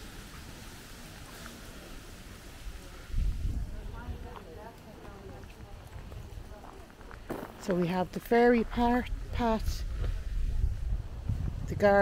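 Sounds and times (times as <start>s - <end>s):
faint voices talking: 0.3s - 11.1s
footsteps on gravel: 4.2s - 8.1s.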